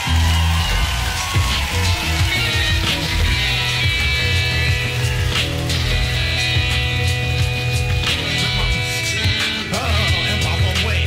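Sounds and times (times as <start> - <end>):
bass notes: 0.0 - 11.0
electric guitar: 0.0 - 11.0
live rock band playing: 0.0 - 11.0.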